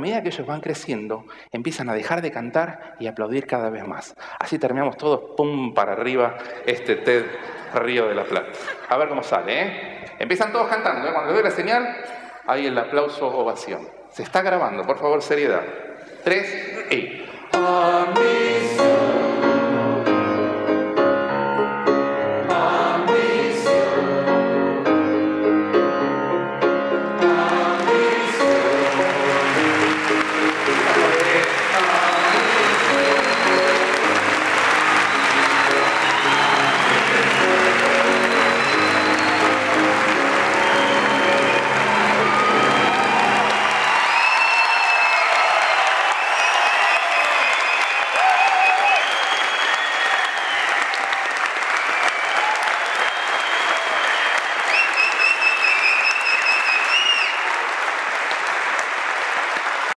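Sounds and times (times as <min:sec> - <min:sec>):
piano chords: 0:17.4 - 0:44.3
audience applauding and cheering: 0:27.2 - 0:59.9
crowd whistling: 0:27.4 - 0:57.6.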